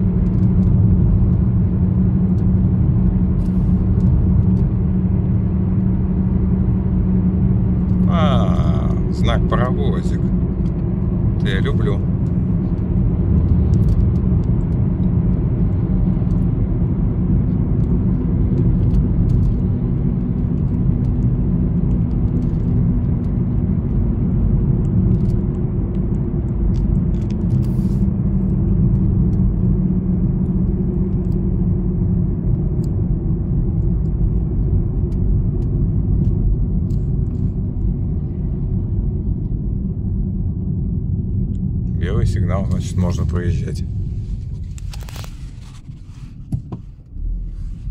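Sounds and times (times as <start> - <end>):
car engine hum: 0.0 - 47.9.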